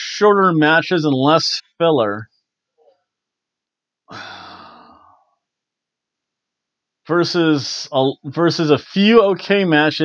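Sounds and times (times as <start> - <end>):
man sighing: 4.1 - 5.2.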